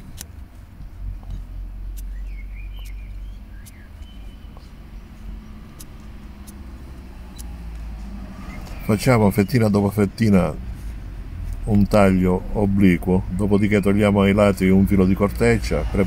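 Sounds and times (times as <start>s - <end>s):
pruning shears snipping: 0.0s - 0.6s, 1.2s - 8.9s
vehicle engine rumble: 0.0s - 16.0s.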